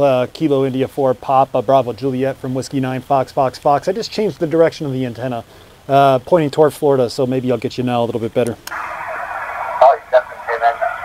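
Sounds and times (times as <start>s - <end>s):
radio static: 8.7s - 11.0s
voice over radio speaker: 8.7s - 11.0s.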